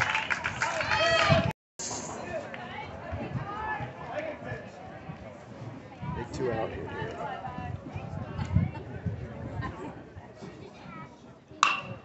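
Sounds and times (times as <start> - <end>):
faint spectator chatter: 1.8 - 12.0
metal bat hitting ball: 11.6 - 12.0.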